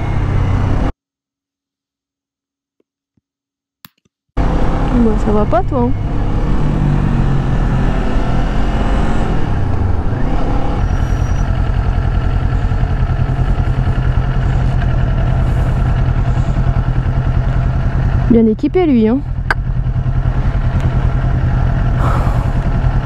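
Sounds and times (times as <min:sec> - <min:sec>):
motorcycle engine slowing: 0:04.4 - 0:23.0.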